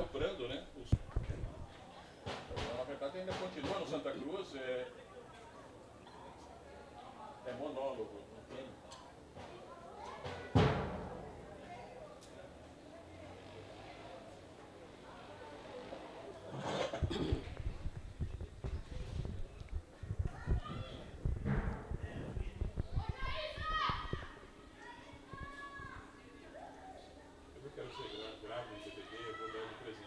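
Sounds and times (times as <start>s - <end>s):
deep drum-like thump: 10.2s - 11.4s, 20.0s - 23.2s
low thumps: 17.1s - 24.4s
distant women shouting: 23.0s - 27.2s.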